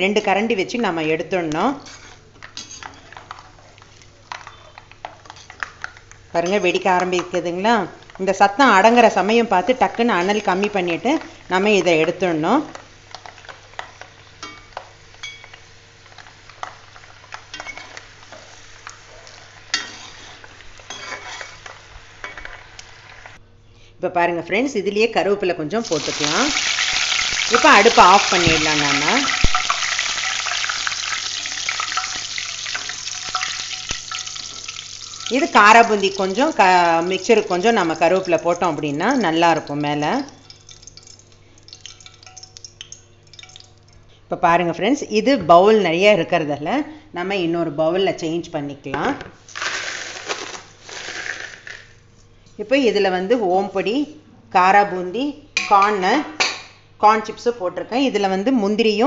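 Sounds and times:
faint steady hum: 0.0 - 59.0
leaves crackling in hot oil: 1.4 - 23.4, 25.8 - 43.9, 49.4 - 52.0
steel ladle scraping and clinking: 19.7 - 22.5
batter frying in hot oil: 25.8 - 43.9
ladle ticking in pan: 40.2 - 43.9.

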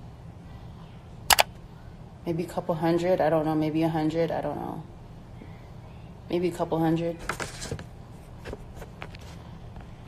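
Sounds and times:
low room hum: 0.0 - 10.0
sharp clicks: 1.3 - 1.5.

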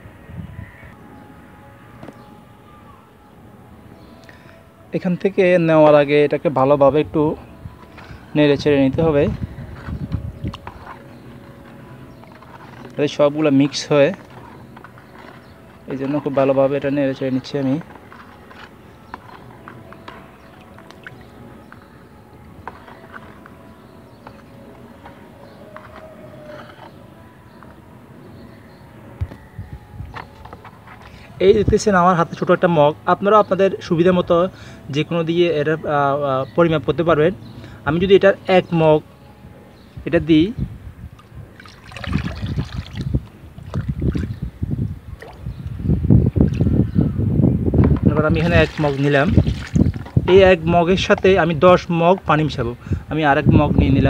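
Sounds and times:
rod stirring liquid in bucket: 7.8 - 27.0, 30.1 - 31.3, 41.2 - 44.3, 48.0 - 52.3
liquid sloshing and splashing: 17.4 - 21.9, 41.2 - 44.5, 48.2 - 50.3.

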